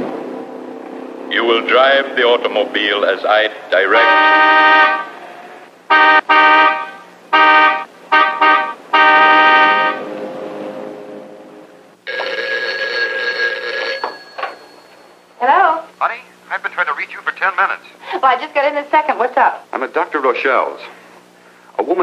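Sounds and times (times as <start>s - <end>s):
car horn blasts: 3.8s - 5.2s, 5.9s - 10.2s
telephone bell ringing: 12.0s - 15.4s.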